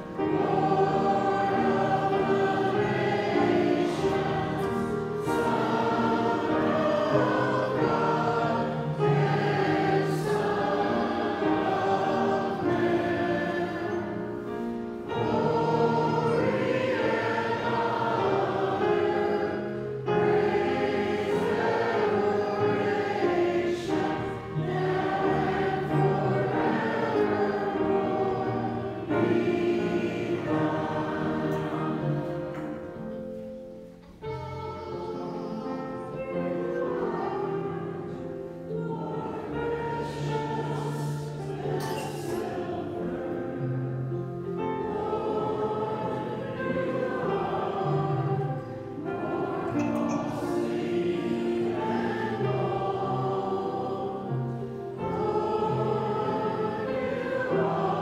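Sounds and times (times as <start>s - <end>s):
congregation singing a hymn: 0.0s - 58.0s.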